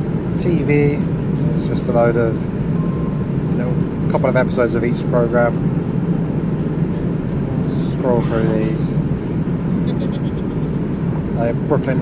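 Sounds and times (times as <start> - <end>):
airliner cabin engine rumble: 0.0 - 12.0.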